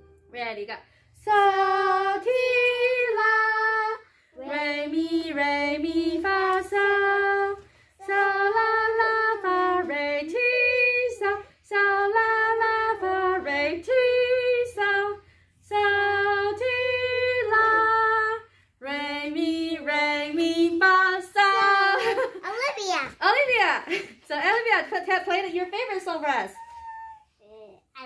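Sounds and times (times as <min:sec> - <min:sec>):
woman and girl singing: 0:01.2 - 0:22.4.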